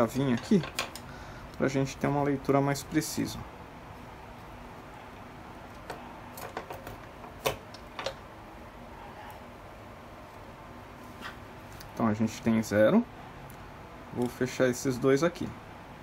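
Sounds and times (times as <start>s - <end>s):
low room hiss: 0.0s - 16.0s.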